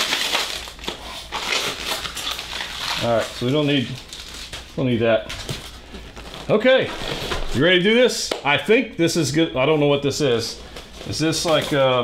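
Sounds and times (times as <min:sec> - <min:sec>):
plastic wrap crinkling: 0:00.0 - 0:07.7, 0:10.3 - 0:12.0.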